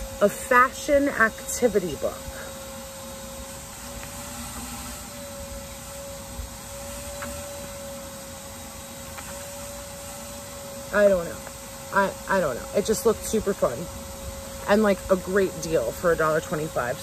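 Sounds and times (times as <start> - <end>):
mechanical hum: 0.0 - 17.0.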